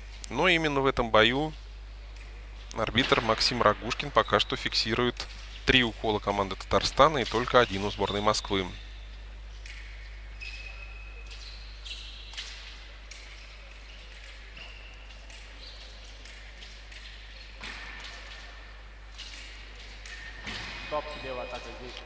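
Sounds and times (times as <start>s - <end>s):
low electrical hum: 0.0s - 22.0s
shoe squeaks: 7.3s - 9.2s, 10.0s - 16.1s, 20.1s - 22.0s.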